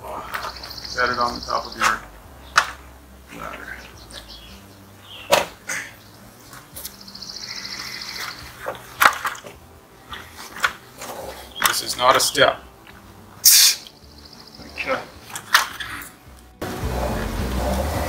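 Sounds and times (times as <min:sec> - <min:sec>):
wooden knocks and clunks: 0:01.8 - 0:03.0, 0:05.2 - 0:05.7.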